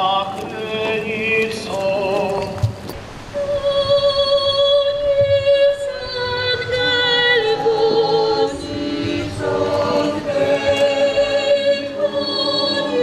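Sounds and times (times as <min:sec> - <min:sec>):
choir singing a slow hymn: 0:03.3 - 0:13.0.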